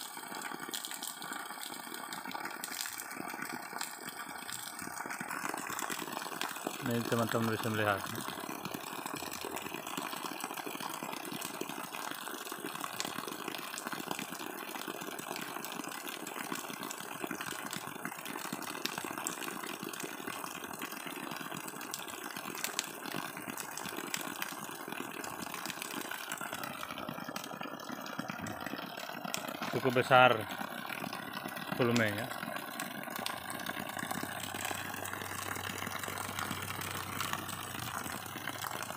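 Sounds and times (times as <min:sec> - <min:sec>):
water pouring and splashing: 0:00.0 - 0:38.9.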